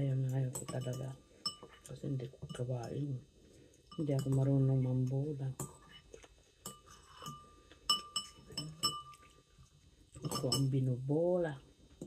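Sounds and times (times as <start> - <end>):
spoon and fork clinking on dish: 0.3 - 3.0, 3.9 - 4.6, 6.6 - 9.4, 10.2 - 10.8.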